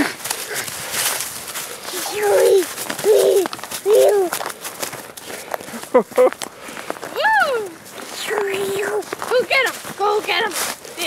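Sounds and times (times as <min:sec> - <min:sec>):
footsteps crunching on snow: 0:00.0 - 0:11.0
toddler calling out: 0:02.0 - 0:04.4.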